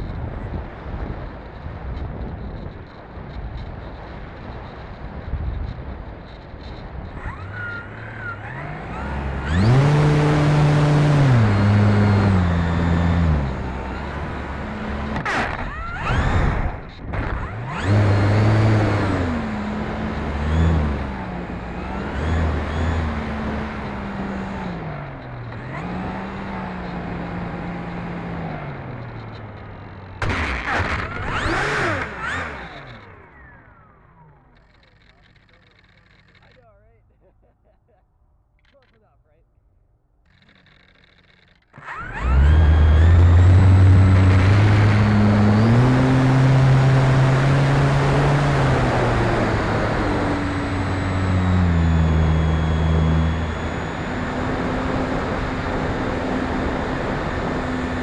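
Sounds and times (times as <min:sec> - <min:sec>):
electric motor and propeller whining: 0:00.4 - 0:36.7, 0:40.2 - 0:58.0.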